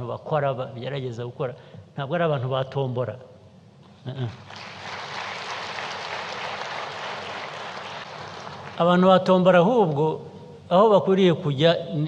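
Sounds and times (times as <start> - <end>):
audience applauding: 4.4 - 9.0.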